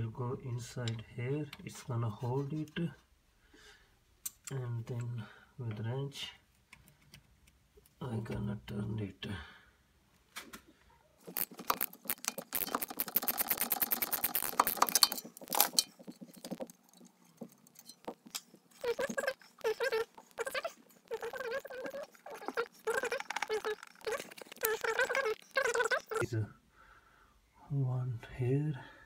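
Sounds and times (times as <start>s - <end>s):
ratchet wrench clicking: 11.4s - 15.9s
person speaking: 18.8s - 26.6s.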